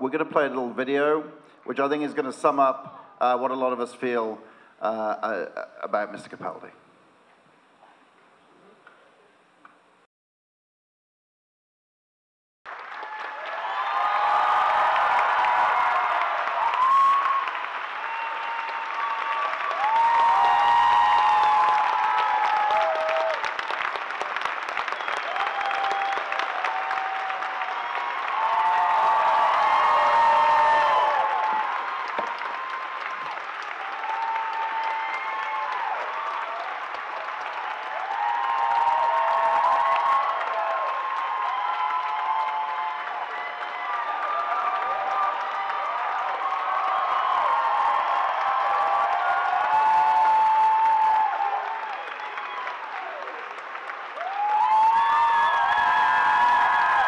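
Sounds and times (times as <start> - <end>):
audience applauding: 12.7 - 57.0
crowd cheering and whooping: 12.8 - 57.0.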